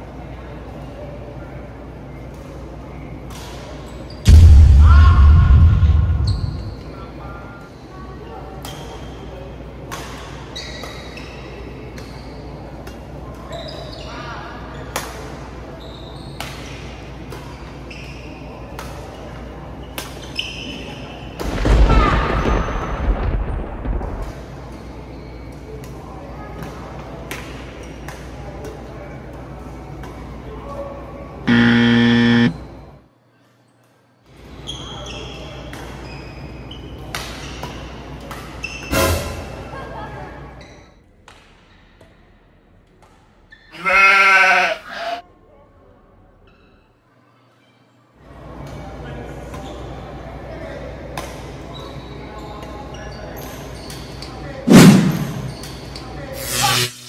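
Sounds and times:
loud burst of noise: 4.3 - 7.0, 31.5 - 32.6, 56.4 - 57.0
shoe squeaks on court floor: 6.3 - 6.8, 10.6 - 11.4, 55.2 - 57.0
buzzer tone: 31.5 - 32.6.

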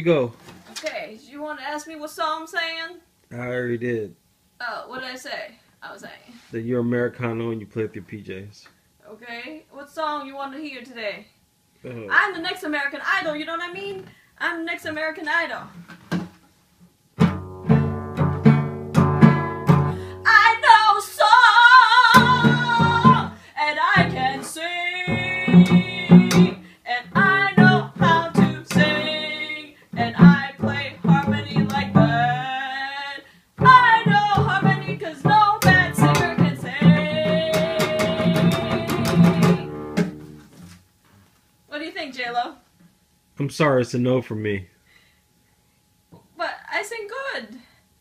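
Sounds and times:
cello strummed and plucked: 17.2 - 20.5, 22.1 - 32.6, 33.6 - 40.5
woman singing: 19.2 - 39.8.

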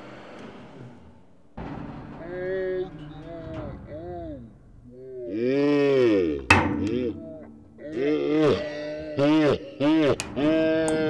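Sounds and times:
people exclaiming oh: 5.0 - 11.0.

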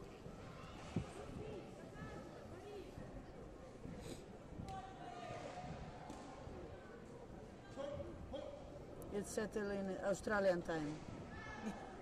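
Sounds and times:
faint background voices talking: 0.0 - 12.0.

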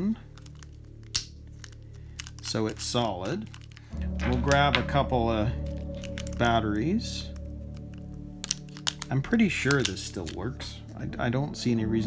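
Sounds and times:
plastic cover snapping into place: 7.8 - 9.1.

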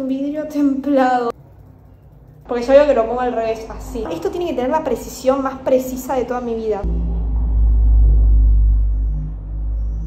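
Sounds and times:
music with deep bass: 6.8 - 10.0.

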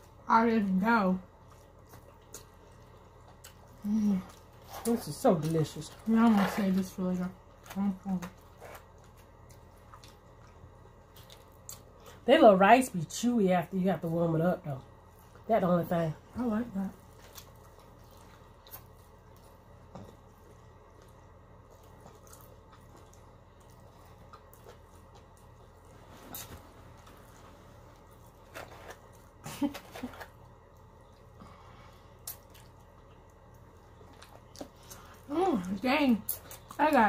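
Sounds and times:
woman speaking: 0.3 - 1.3, 3.8 - 8.4, 12.2 - 17.0, 35.3 - 37.0
chewing and wet mouth noises: 1.2 - 12.2, 16.9 - 37.0.

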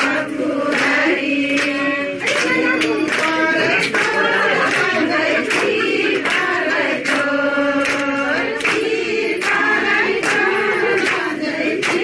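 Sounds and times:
women singing together: 0.0 - 12.0.

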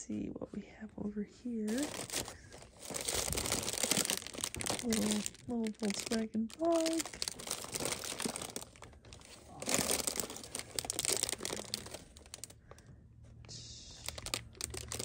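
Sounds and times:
low steady hum: 0.0 - 15.0
cellophane crinkling: 1.7 - 12.6, 14.0 - 15.0.

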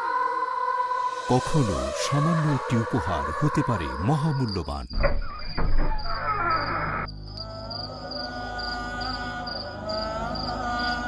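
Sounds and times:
crickets chirping: 0.9 - 11.0
sustained music drone: 7.1 - 11.0.

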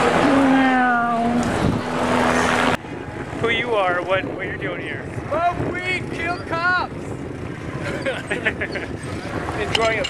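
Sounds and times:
wind rumbling on microphone: 0.0 - 10.0
voices of nearby riders: 2.8 - 10.0.

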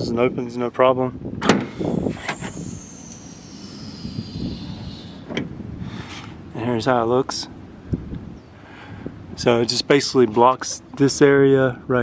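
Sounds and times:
high whine: 1.6 - 5.4.

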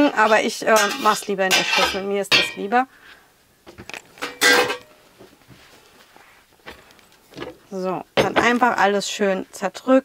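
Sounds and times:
cookware clattering against bowl: 0.2 - 2.6, 4.2 - 4.9.

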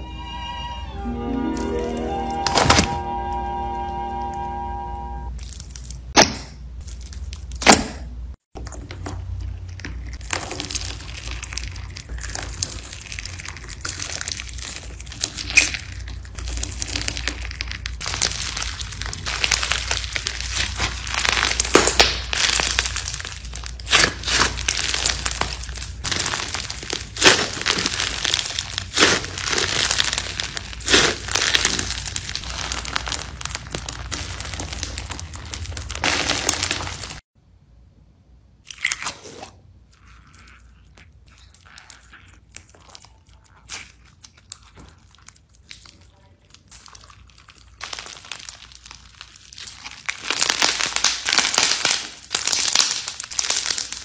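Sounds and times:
slime crackling and popping: 5.3 - 37.3, 38.6 - 54.0.

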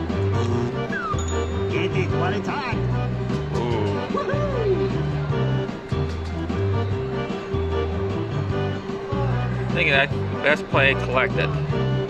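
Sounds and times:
slot machine music with bass: 0.0 - 12.0.

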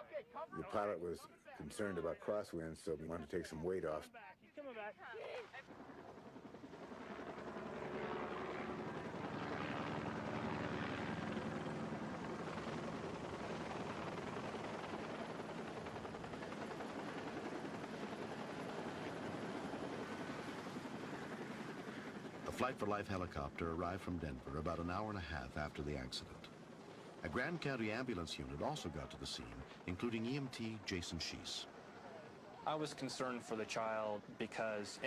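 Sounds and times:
helicopter rotor and turbine: 5.5 - 35.0.

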